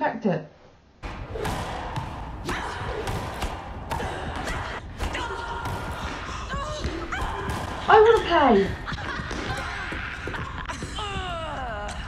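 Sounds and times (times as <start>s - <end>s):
thuds: 1.0s - 10.8s.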